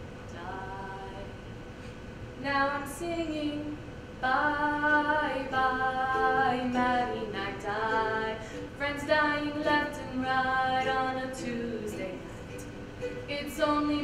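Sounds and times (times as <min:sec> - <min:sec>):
woman singing slow melody: 0:00.3 - 0:01.5, 0:02.4 - 0:14.0
ukulele strums: 0:04.5 - 0:14.0.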